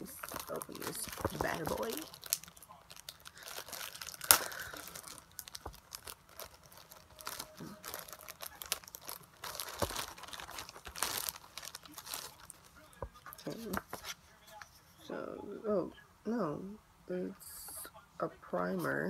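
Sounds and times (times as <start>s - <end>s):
plastic packaging crinkling: 0.0s - 14.2s
plastic packaging tearing: 0.0s - 14.2s.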